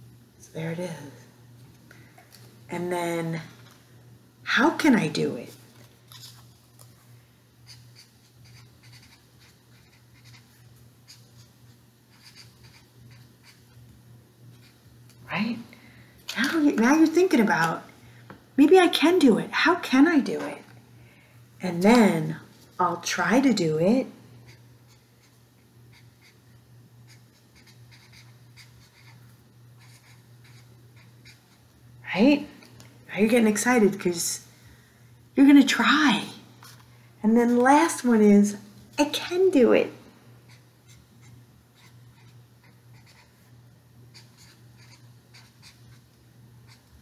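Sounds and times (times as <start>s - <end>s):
low steady hum: 0.0s - 47.0s
marker scratching on paper: 7.7s - 11.5s, 12.1s - 13.8s, 27.1s - 29.2s, 29.8s - 31.6s, 40.5s - 43.5s, 44.1s - 46.0s.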